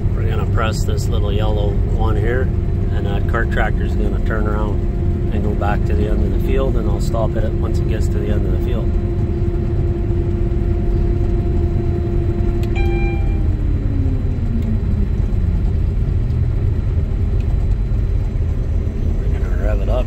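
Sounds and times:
auger hum: 0:00.0 - 0:20.0
engine rumble: 0:00.0 - 0:20.0
short beep: 0:12.7 - 0:13.6.

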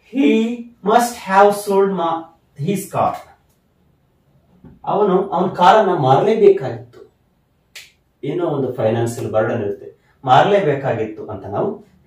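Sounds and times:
man talking: 0:00.0 - 0:03.3, 0:04.7 - 0:07.1, 0:08.2 - 0:11.9.

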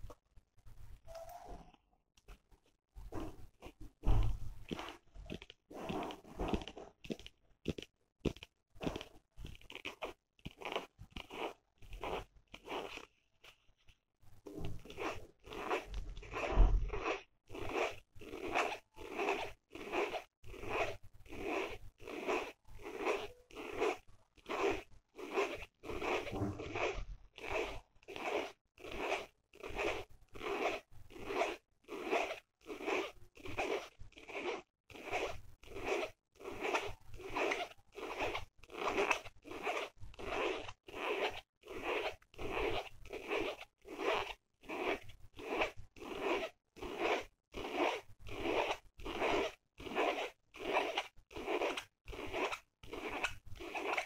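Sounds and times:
fingernails scratching a case: 0:03.1 - 0:13.6, 0:14.6 - 0:54.0.

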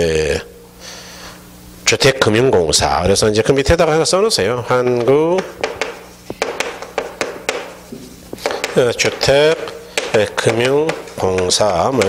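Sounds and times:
chalk writing on chalkboard: 0:04.7 - 0:12.0.

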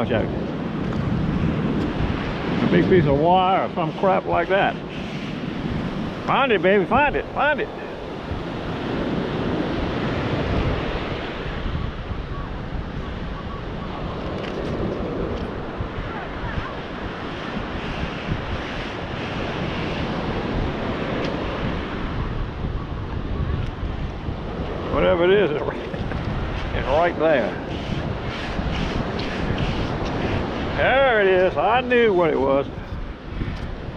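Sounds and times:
surf washing over sand: 0:00.0 - 0:33.9
wind buffeting microphone: 0:00.0 - 0:33.9.

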